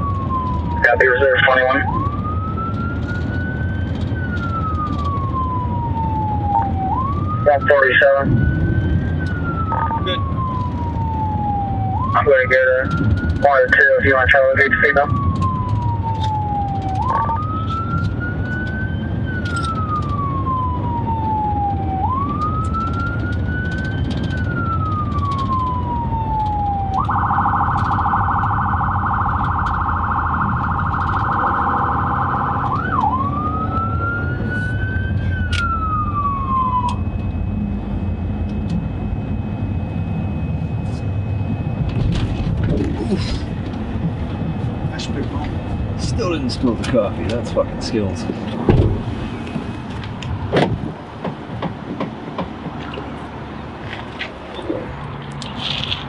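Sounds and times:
police siren wailing and yelping: 0.0s - 51.1s
engine and road noise: 0.0s - 56.0s.

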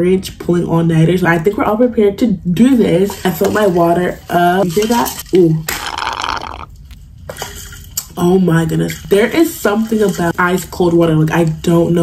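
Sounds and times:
person gulping and swallowing: 5.7s - 7.0s.

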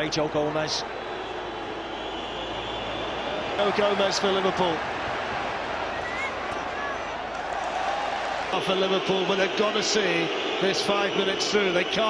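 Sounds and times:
stadium crowd noise: 0.0s - 12.0s
faint whistles: 1.2s - 3.6s.

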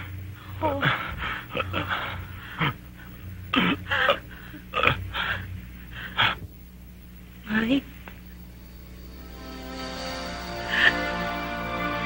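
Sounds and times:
low hum: 1.1s - 12.0s.

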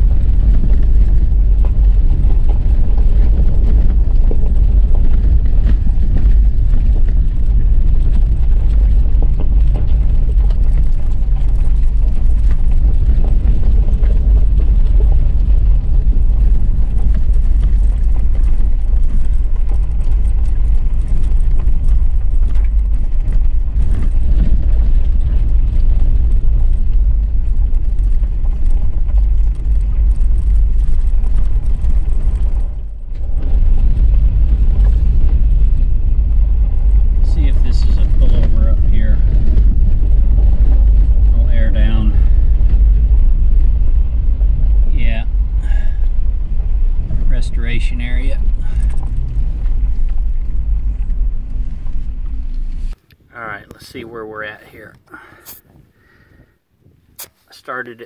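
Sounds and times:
vehicle rumbling over gravel road: 0.0s - 58.0s.

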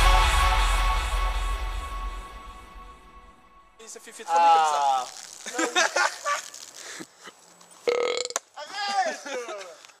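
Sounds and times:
young men calling out: 3.8s - 5.1s, 8.6s - 9.8s
young men laughing: 4.3s - 6.6s, 8.7s - 9.8s.

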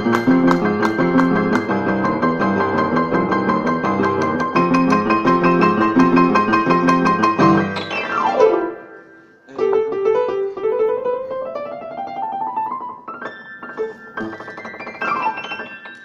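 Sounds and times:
rock and roll upright piano: 0.0s - 16.0s.

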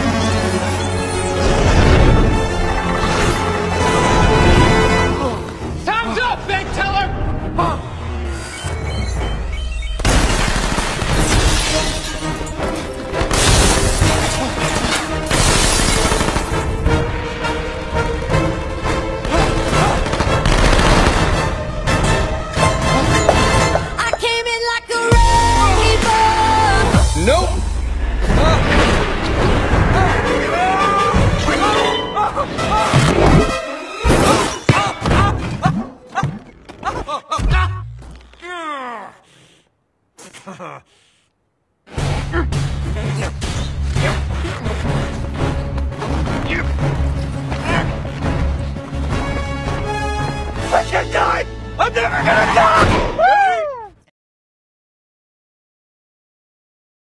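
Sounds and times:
dramatic music score: 0.0s - 36.0s, 41.9s - 53.3s
crashing and shattering effects: 10.0s - 16.6s.

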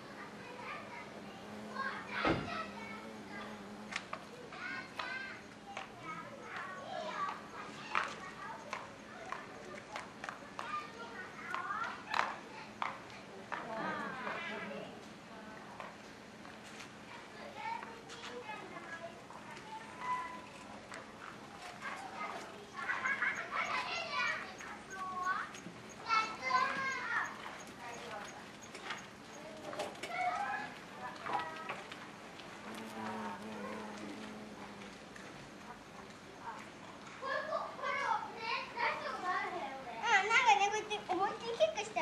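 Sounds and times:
children chattering and calling: 0.0s - 42.0s.

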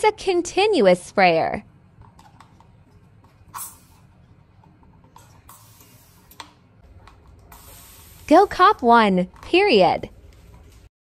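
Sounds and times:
spray bottle mist hiss: 3.5s - 4.0s, 5.5s - 6.3s, 7.5s - 8.5s.

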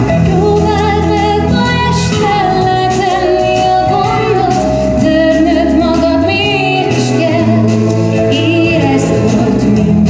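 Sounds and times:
instrumental accompaniment: 0.0s - 10.0s
woman singing: 0.1s - 10.0s.

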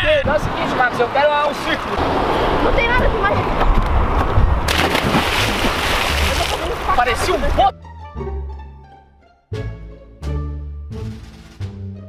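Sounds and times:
big splash into water: 4.7s - 7.0s
rushing churning water: 4.7s - 7.7s.

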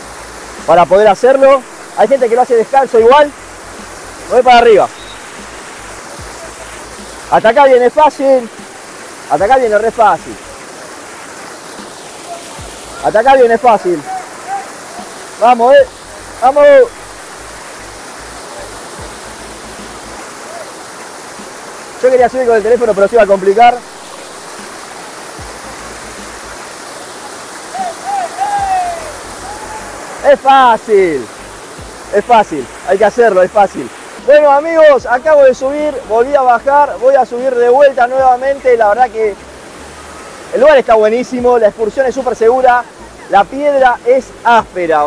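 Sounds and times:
water rushing down rocks: 0.0s - 45.0s
person calling out: 13.0s - 15.1s, 27.7s - 30.3s.

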